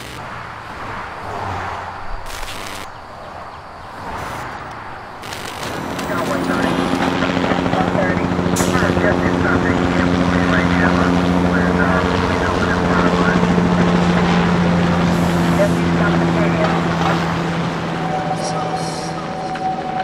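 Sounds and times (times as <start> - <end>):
droning hum of low tones: 2.1 - 19.5.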